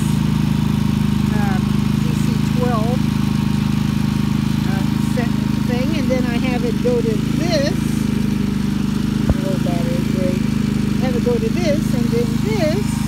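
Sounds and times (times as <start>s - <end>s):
generator running: 0.0s - 13.0s.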